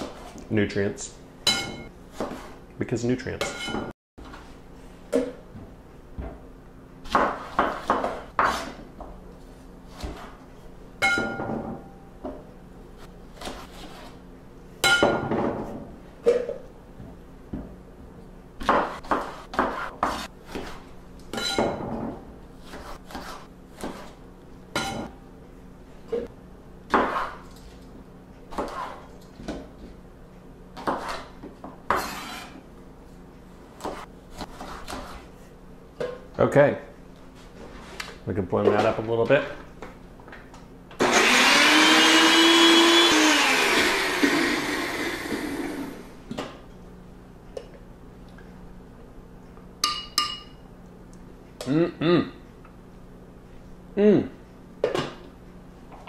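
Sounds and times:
knife chopping on wooden board: 7.1 - 8.8, 18.6 - 20.8, 33.8 - 35.2.

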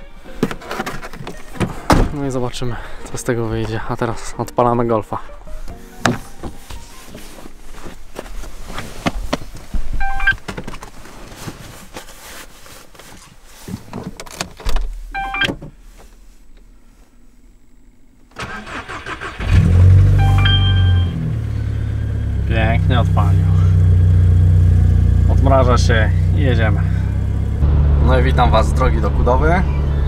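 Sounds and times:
electronic dashboard chimes: 10.0 - 10.4, 15.1 - 15.5, 20.1 - 22.5
car engine idling: 15.7 - 30.0.

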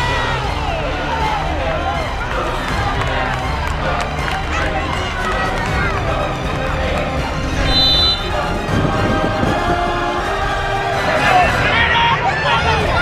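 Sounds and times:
background music: 0.0 - 13.0
high whistle: 7.6 - 8.5.

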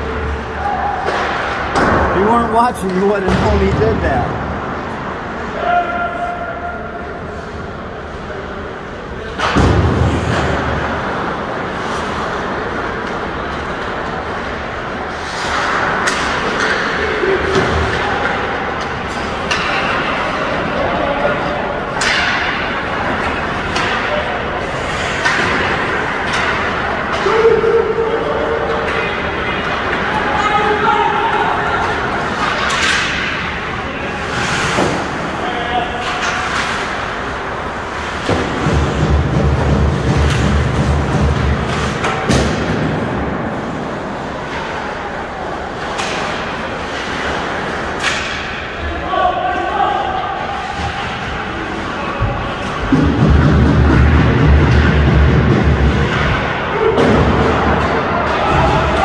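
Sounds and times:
arena noise: 0.0 - 59.0
hockey sticks and puck knocking: 15.2 - 20.3, 21.9 - 27.4, 36.0 - 43.4.

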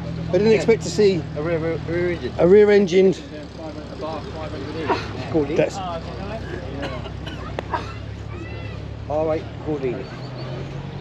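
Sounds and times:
people talking: 0.0 - 10.6.

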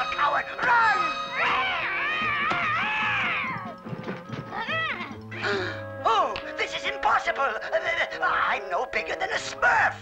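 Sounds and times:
background music: 0.0 - 10.0
cartoon cat yowling: 1.3 - 3.6.

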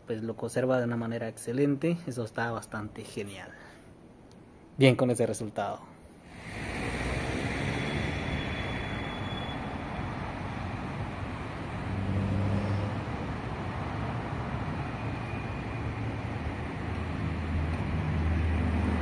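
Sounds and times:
hum of traffic: 0.0 - 19.0
vehicle passing: 6.3 - 19.0.

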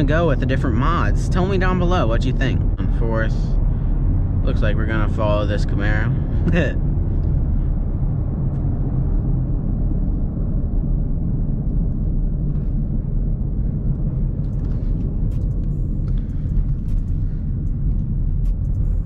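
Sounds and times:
car engine and road noise: 0.0 - 19.0.

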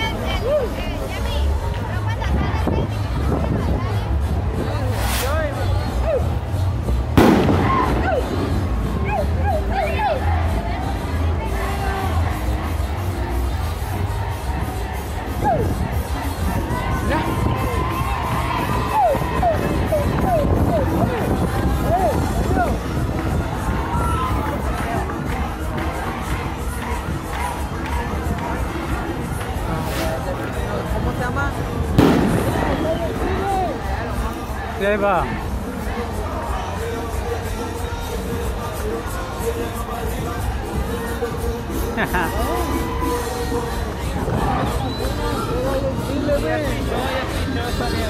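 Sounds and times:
crowd shouting and cheering: 0.0 - 48.0
parade music with low beat: 0.0 - 48.0
sharp bang: 32.0 - 32.8.

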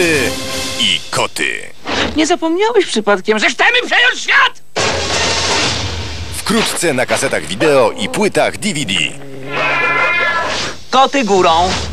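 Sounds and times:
cat meowing: 7.6 - 10.8.

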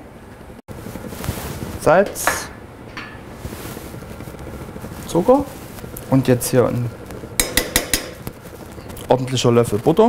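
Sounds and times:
spoon clinking on metal pot: 7.4 - 8.2.

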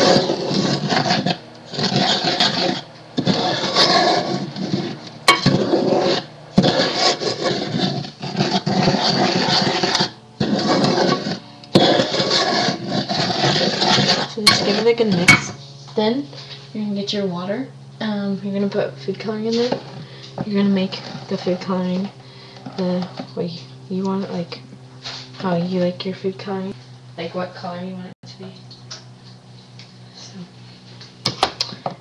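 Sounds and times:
wooden spoon scraping pot: 0.0 - 16.6, 19.4 - 25.9.

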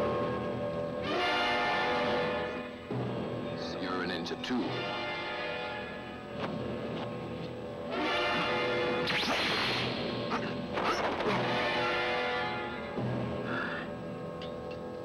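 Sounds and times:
film soundtrack music: 0.0 - 15.0.

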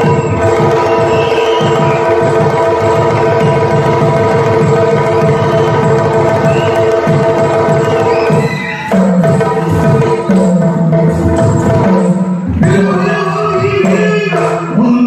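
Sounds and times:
fast continuous drumming: 0.0 - 15.0.

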